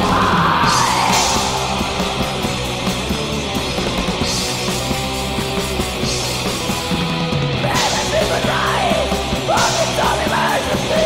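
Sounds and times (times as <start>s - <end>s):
harsh yelled vocals: 0.0s - 3.2s, 7.6s - 11.0s
metal band playing: 0.0s - 11.0s.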